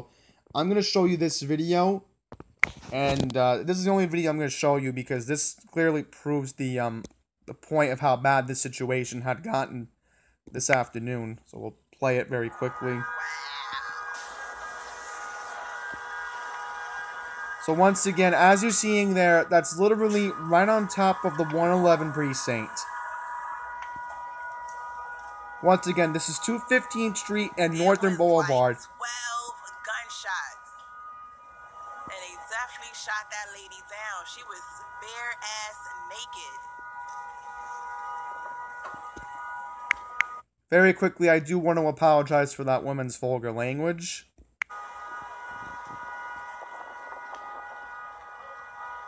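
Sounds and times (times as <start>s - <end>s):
steady multi-pitch tone: 12.2s - 40.4s, 44.7s - 49.0s
street background noise: 44.8s - 49.0s.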